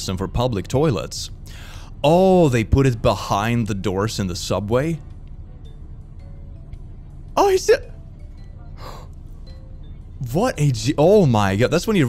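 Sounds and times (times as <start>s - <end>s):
faint background music: 0.0s - 12.0s
sharp gasp: 1.5s - 1.9s.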